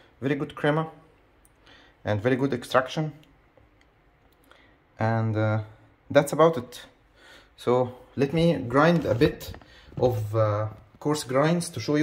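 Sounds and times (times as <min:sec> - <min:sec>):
person speaking: 0:00.1 - 0:01.2, 0:07.6 - 0:12.0.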